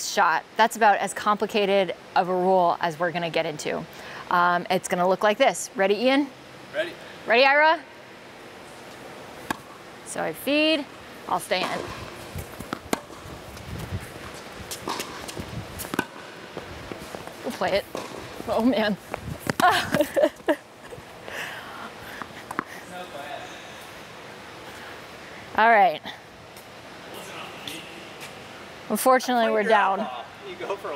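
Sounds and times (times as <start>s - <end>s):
tennis racket hitting ball: 9.4s - 9.8s, 11.6s - 13.3s, 14.2s - 16.4s, 17.6s - 18.6s, 19.4s - 20.0s
woman laughing: 19.6s - 21.6s
hiss of a large hall: 26.3s - 28.8s.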